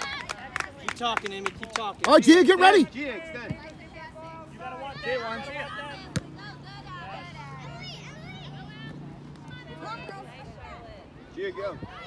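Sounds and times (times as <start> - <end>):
distant players and spectators shouting: 0.0 - 12.0.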